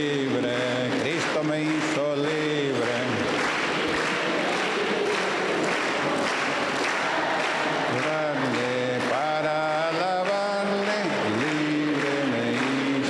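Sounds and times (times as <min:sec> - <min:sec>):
man chanting: 0:00.0 - 0:03.2
crowd applauding: 0:00.0 - 0:13.0.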